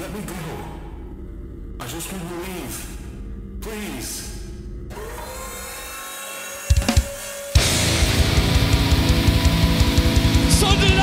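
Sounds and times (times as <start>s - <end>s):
amplifier hum: 0.0s - 6.0s
distorted electric guitars: 6.7s - 11.0s
rapid kick drums: 6.7s - 11.0s
heavy metal band playing: 6.8s - 11.0s.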